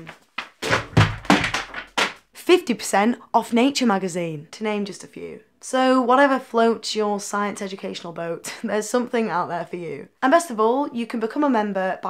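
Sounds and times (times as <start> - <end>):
magazines thudding: 0.0 - 2.2
paper rustling: 0.0 - 2.2.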